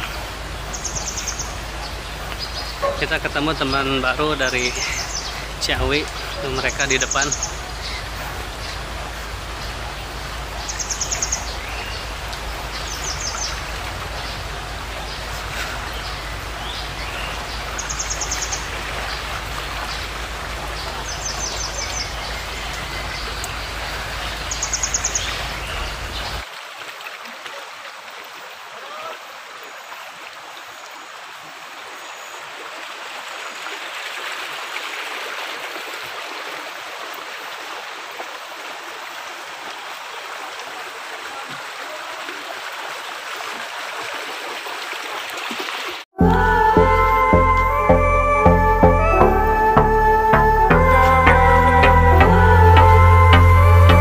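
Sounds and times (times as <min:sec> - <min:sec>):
water rushing along channel: 0:00.0 - 0:54.0.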